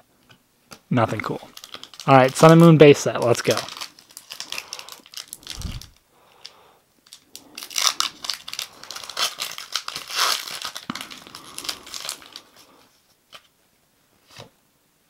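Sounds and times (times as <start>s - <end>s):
foil wrapper tearing and crinkling: 1.5s - 13.4s.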